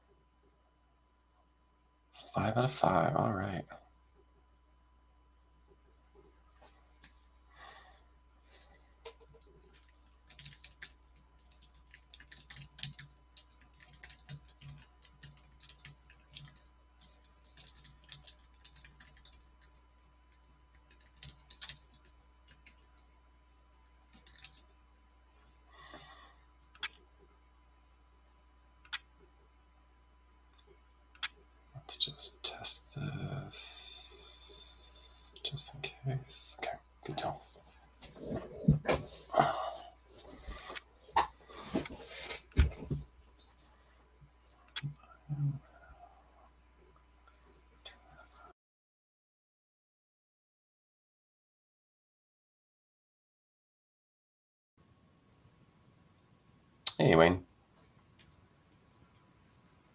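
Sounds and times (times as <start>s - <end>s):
low electrical hum: 0.0s - 48.5s, 54.8s - 59.9s
typing on computer keyboard: 9.1s - 23.0s, 23.6s - 24.7s.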